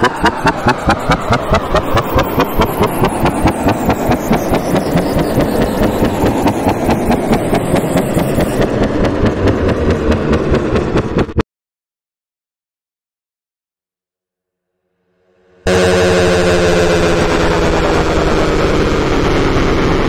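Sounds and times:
high tone gliding downward: 0.0 - 11.4, 15.3 - 20.0
pulsing transition noise: 0.0 - 11.4, 15.3 - 20.0.

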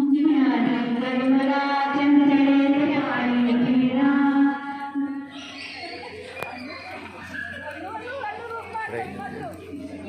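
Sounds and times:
woman singing chant-like notes: 0.0 - 5.3
women chatting: 0.0 - 10.0.

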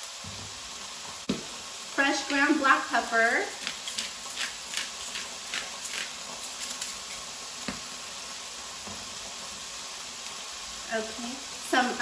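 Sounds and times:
food sizzling in frying pan: 0.0 - 12.0
pepper mill grinding: 3.6 - 7.3.

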